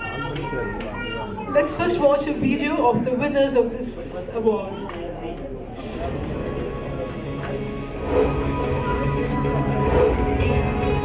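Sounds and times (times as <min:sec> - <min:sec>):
woman speaking into a microphone: 0:01.5 - 0:05.0.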